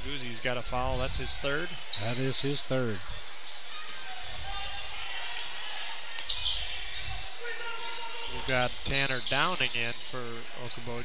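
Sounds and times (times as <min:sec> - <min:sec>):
basketball court noise: 0:00.0 - 0:11.0
crowd voices: 0:00.0 - 0:11.0
shoe squeak: 0:02.9 - 0:04.0, 0:05.9 - 0:07.3, 0:08.2 - 0:10.1.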